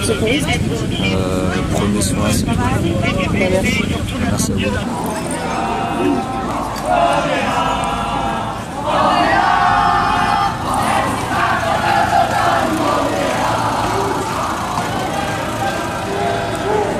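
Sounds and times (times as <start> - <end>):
crowd chanting: 4.7 - 16.9.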